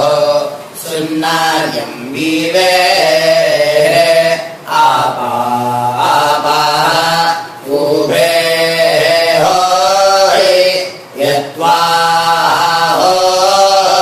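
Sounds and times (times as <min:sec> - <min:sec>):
person chanting melodically: 0:00.0 - 0:14.0.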